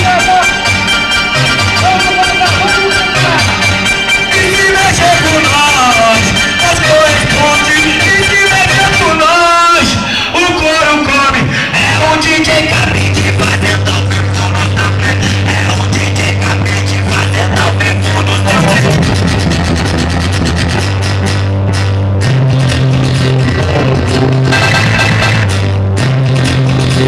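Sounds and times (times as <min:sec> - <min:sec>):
loud electronic dance music: 0:00.0 - 0:27.0.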